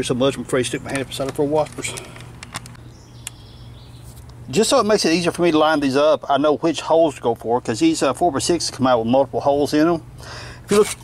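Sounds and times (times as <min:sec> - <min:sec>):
faint high bird chirping: 0:02.8 - 0:04.2.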